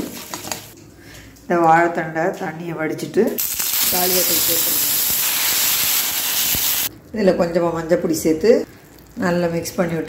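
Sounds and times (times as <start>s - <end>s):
vegetables sizzling in hot oil: 3.4s - 6.9s.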